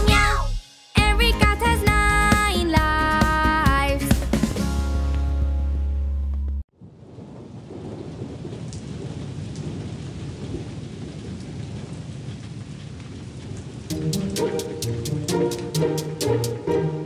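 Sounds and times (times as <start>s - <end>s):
music: 0.0s - 6.6s, 13.9s - 17.0s
steady rain: 6.7s - 17.0s.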